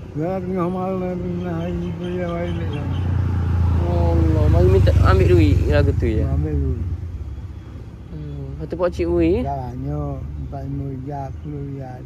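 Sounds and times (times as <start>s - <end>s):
vehicle engine rumble: 0.0s - 12.0s
elderly man speaking: 0.1s - 3.0s, 3.8s - 6.9s, 9.4s - 12.0s.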